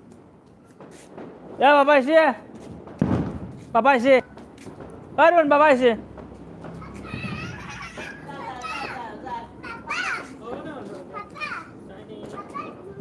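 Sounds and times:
children calling and chattering: 0.2s - 1.3s, 4.0s - 13.0s.

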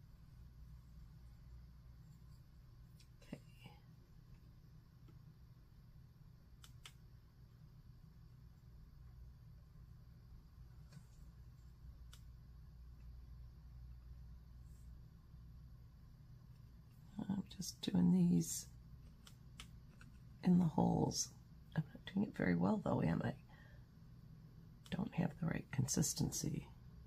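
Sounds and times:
steady low hum: 0.0s - 27.0s
faint clicks: 6.6s - 7.0s.

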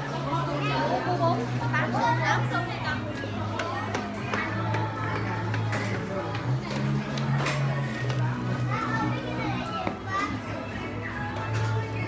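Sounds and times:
background music: 0.0s - 12.0s
children calling and chattering: 0.0s - 12.0s.

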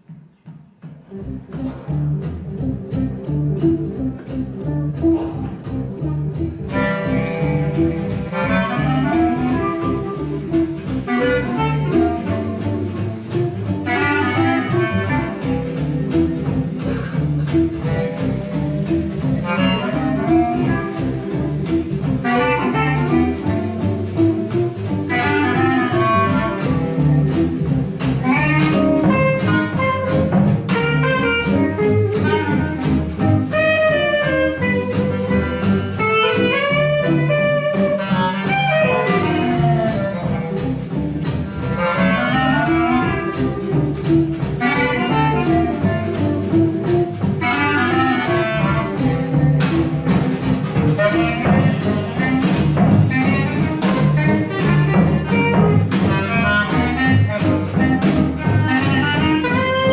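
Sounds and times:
jazz band playing: 0.8s - 59.9s
steady cymbal beat: 0.8s - 59.9s
clarinets playing melody: 2.8s - 17.1s, 17.8s - 41.0s, 41.6s - 59.9s.

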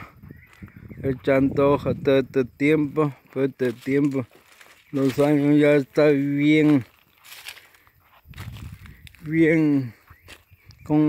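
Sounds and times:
footsteps on dry leaves and twigs: 0.1s - 2.0s, 2.6s - 11.0s.

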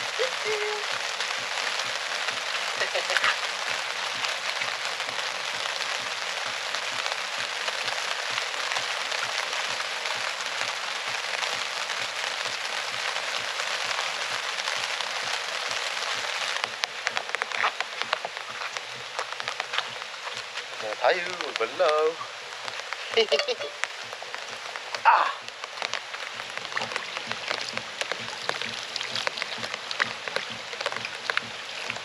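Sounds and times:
steady rain falling: 0.0s - 32.0s
scattered clicks and knocks: 24.9s - 32.0s.

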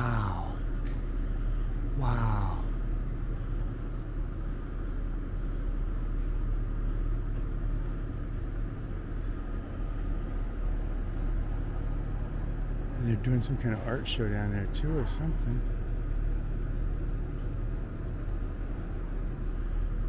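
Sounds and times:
low rumble in echoing hall: 0.0s - 20.0s.

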